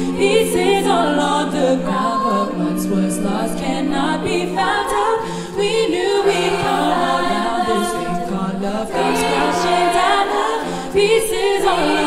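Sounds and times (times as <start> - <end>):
a cappella choir singing: 0.0 - 12.0.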